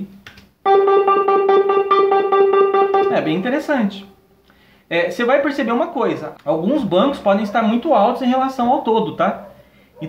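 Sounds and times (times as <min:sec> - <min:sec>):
electric piano note repeating: 0:00.6 - 0:04.2.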